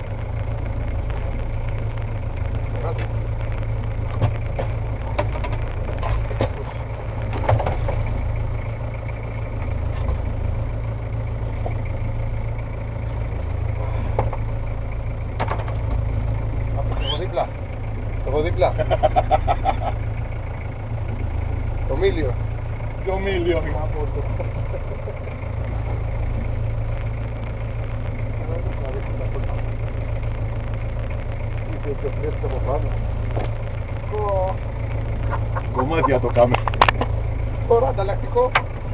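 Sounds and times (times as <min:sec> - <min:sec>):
boat engine idling: 0:00.0 - 0:38.9.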